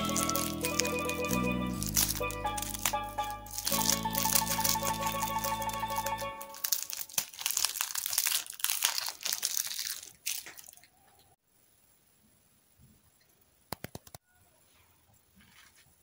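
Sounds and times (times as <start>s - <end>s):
background music: 0.0s - 7.1s
plastic wrapper crinkling: 0.0s - 11.0s.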